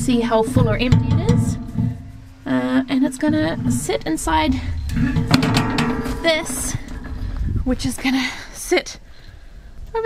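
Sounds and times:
woman's voice: 0.0 - 1.7, 2.4 - 4.8, 5.9 - 7.0, 7.6 - 9.0.

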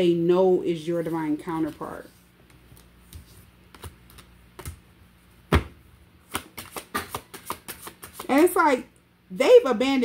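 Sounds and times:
cards being shuffled: 1.0 - 4.8, 6.2 - 8.6.

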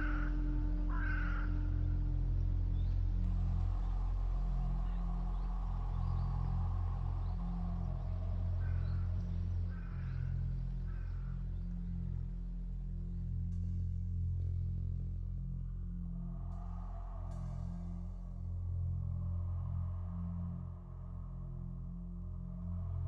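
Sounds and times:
low steady drone: 0.0 - 23.0.

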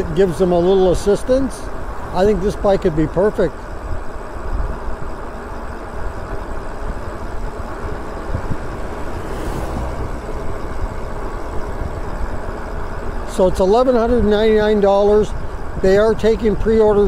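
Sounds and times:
bike tyre and road noise: 0.0 - 17.0
wind rush on microphone: 3.6 - 17.0.

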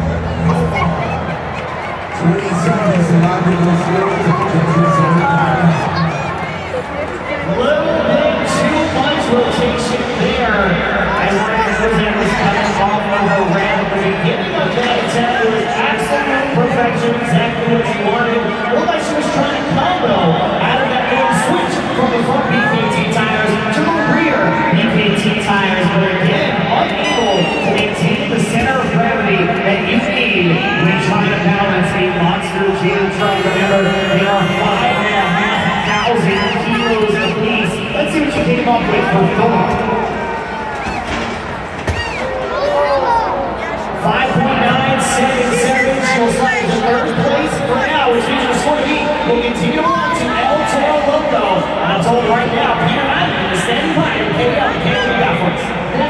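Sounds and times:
crowd murmur: 0.0 - 56.0
children shouting: 3.9 - 7.1, 33.1 - 37.7
announcer over public address: 20.0 - 39.7.

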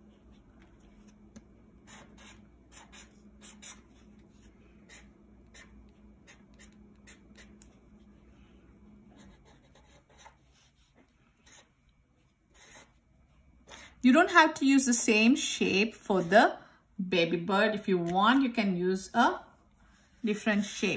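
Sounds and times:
marker scratching on paper: 1.8 - 7.8, 9.1 - 11.7, 12.5 - 13.0.

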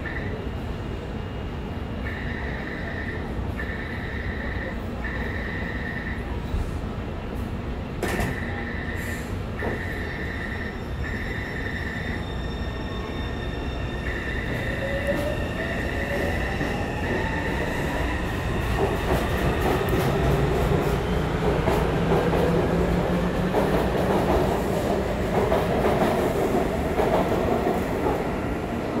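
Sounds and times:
wheels rumbling on rails: 14.0 - 29.0.

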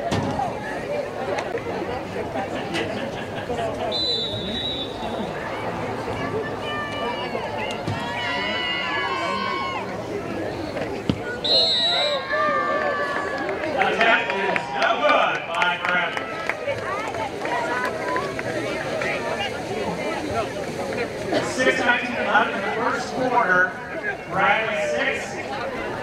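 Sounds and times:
spectators talking and shouting: 0.0 - 26.0
short high whistle: 4.0 - 5.0, 11.4 - 12.2.

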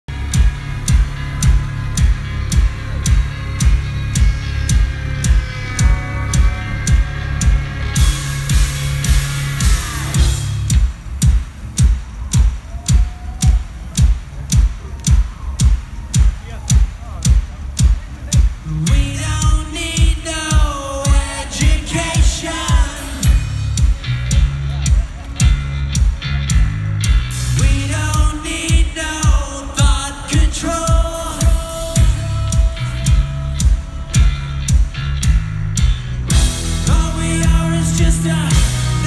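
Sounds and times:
held low bass: 0.0 - 39.0
live rock band music: 0.1 - 39.0
kick drum beat: 10.2 - 26.7.

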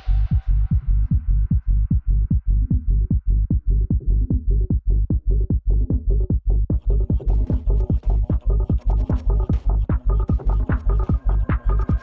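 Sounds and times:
heavy kick drum pattern: 0.0 - 12.0
high percussion ticks: 6.8 - 12.0.

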